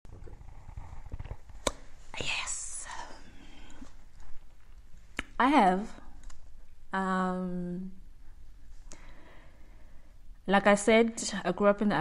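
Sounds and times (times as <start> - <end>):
woman breathing out: 8.9 - 10.2.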